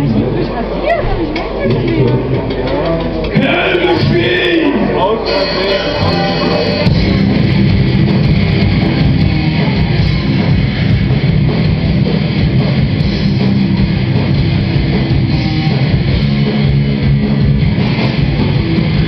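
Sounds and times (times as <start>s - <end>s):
bass guitar: 0.0s - 19.0s
drum kit: 0.9s - 19.0s
distorted electric guitars: 3.0s - 19.0s.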